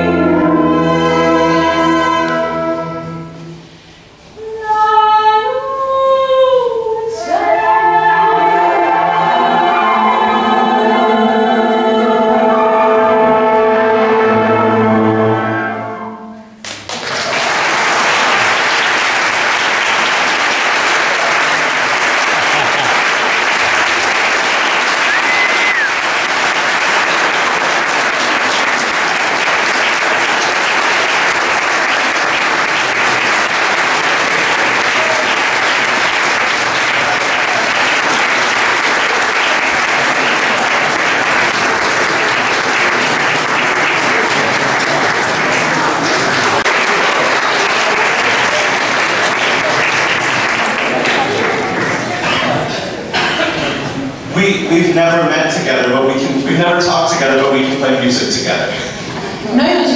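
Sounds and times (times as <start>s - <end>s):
large audience applauding: 16.6s - 53.8s.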